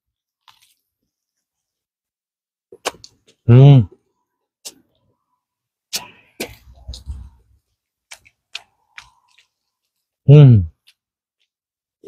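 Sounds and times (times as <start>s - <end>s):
faint chewing: 0.2s - 1.8s, 5.9s - 12.0s.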